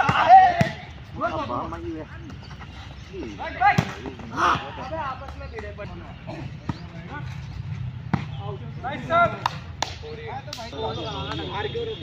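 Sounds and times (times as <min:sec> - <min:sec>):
players calling out: 0:00.0 - 0:12.0.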